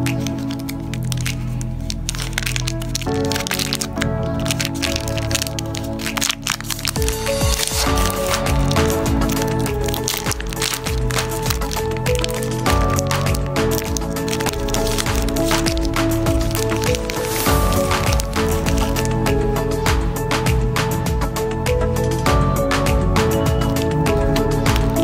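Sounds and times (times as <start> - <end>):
plastic wrapper crackling and tearing: 0.0 - 22.2, 23.2 - 25.0
background music: 0.0 - 25.0.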